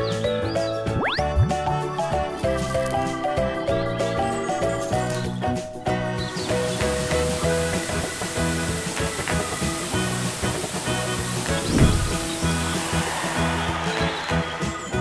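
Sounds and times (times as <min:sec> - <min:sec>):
cheerful background music: 0:00.0 - 0:15.0
water spraying from fire hose: 0:06.1 - 0:14.8.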